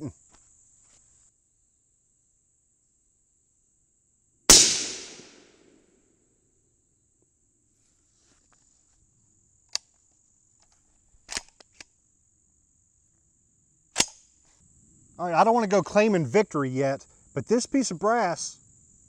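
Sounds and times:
rifle shot echoing: 0:04.5 - 0:05.8
metallic clicks of rifle action: 0:09.7 - 0:10.0, 0:10.6 - 0:11.9, 0:14.0 - 0:14.2.

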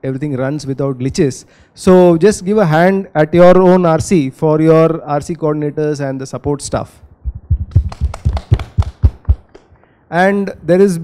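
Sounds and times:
hands clapping: 0:07.7 - 0:09.8.

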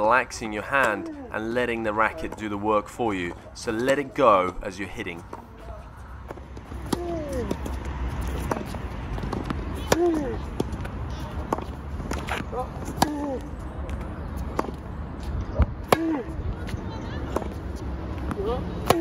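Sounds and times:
racket striking tennis ball: 0:06.3 - 0:14.9, 0:15.6 - 0:17.6, 0:18.2 - 0:19.0.

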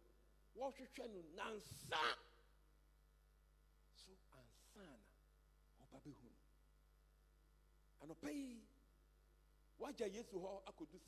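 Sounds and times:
low electrical hum: 0:00.0 - 0:11.0
man's amplified voice: 0:00.6 - 0:02.2, 0:05.8 - 0:06.4, 0:08.0 - 0:08.8, 0:09.8 - 0:11.0.

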